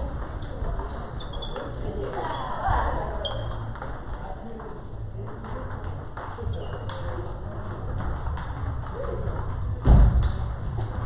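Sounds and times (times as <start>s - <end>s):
murmur of voices: 0.0s - 11.0s
table tennis balls clicking: 0.0s - 11.0s.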